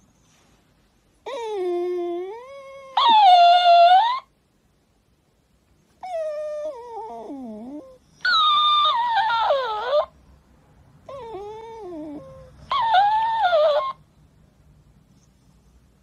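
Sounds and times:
dog whining: 0:01.2 - 0:04.3, 0:06.0 - 0:10.2, 0:11.0 - 0:14.1.

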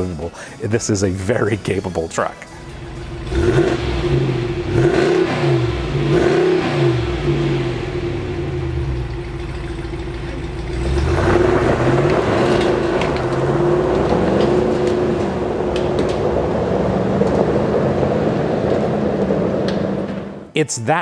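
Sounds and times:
truck accelerating away: 0:02.6 - 0:20.5
truck engine revving: 0:02.6 - 0:20.5.

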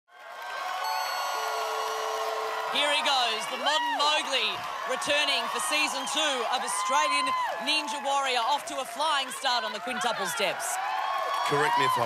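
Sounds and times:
crowd cheering and shouting: 0:00.2 - 0:12.0
steady held tones: 0:00.9 - 0:03.7.

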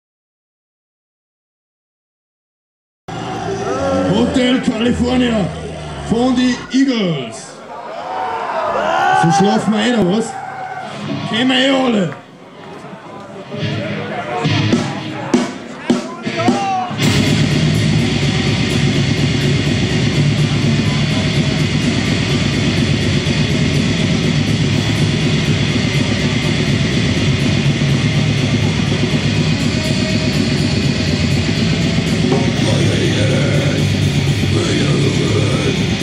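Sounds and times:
black metal band playing: 0:10.9 - 0:11.9, 0:13.4 - 0:36.0.

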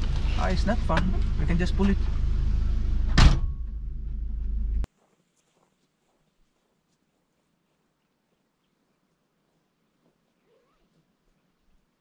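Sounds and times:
engine and road rumble in cabin: 0:00.0 - 0:04.9
loud thump: 0:03.1 - 0:04.6.

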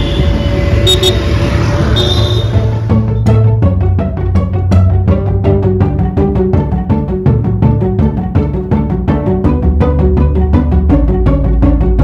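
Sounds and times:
high car horn toots: 0:00.0 - 0:02.8
road traffic noise: 0:00.0 - 0:03.5.

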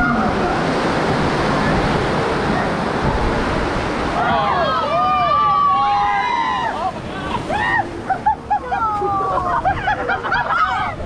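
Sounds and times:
whitewater rushing: 0:00.0 - 0:11.0
people crying out: 0:04.1 - 0:11.0.

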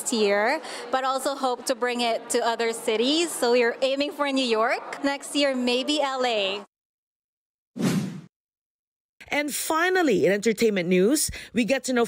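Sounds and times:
whoosh sound effect: 0:07.8 - 0:08.3.

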